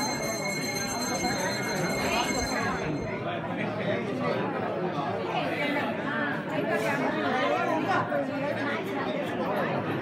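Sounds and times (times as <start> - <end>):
people talking over one another: 0.0 - 6.0.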